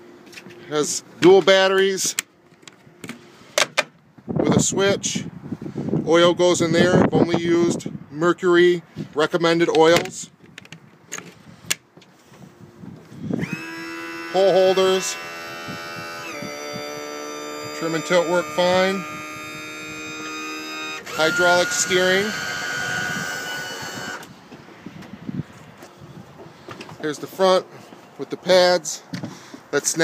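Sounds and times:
electric pump motor whining: 13.1s - 24.6s.

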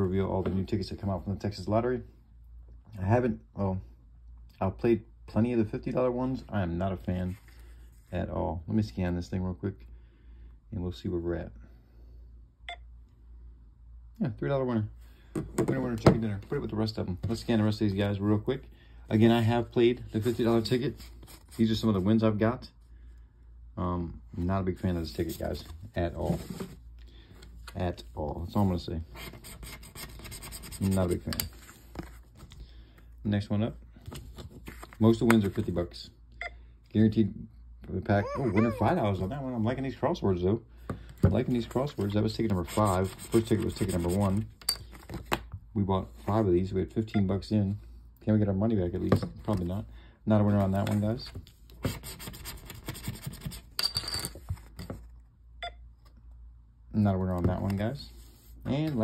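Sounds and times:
paper ticket rubbing on table: 42.5s - 44.4s.

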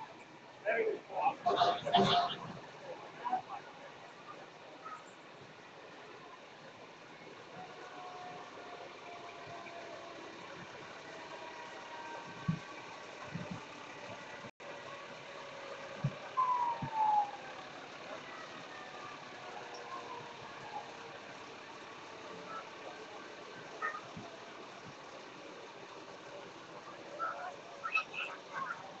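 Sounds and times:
fire truck engines passing: 0.0s - 29.0s
street hum: 0.0s - 29.0s.

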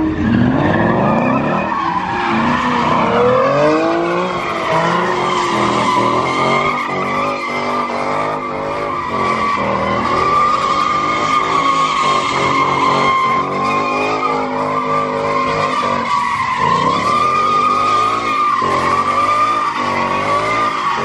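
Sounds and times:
car engine revving: 0.0s - 21.0s
high tire squeal: 0.0s - 21.0s
tires skidding on pavement: 0.0s - 21.0s.

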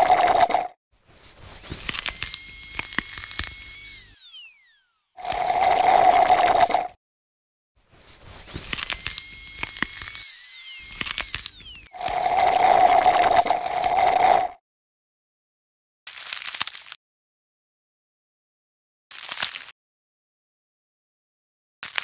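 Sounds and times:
dental drill whining: 1.6s - 6.7s, 8.4s - 14.2s.

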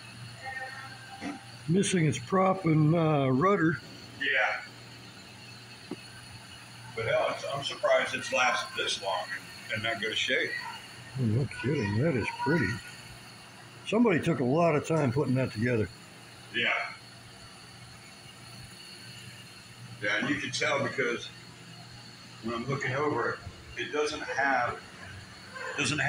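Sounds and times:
light hiss: 0.0s - 26.0s
steady low hum: 0.0s - 26.0s.

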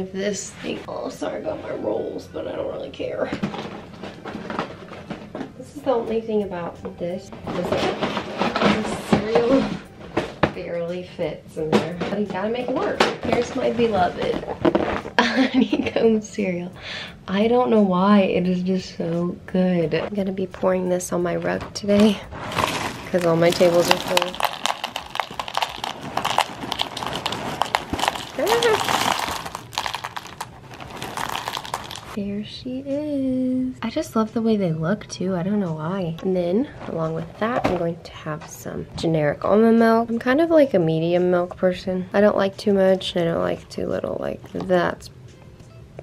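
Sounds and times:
cardboard box scraping and rustling: 22.4s - 24.1s
cereal pouring into a bowl: 22.5s - 32.2s.

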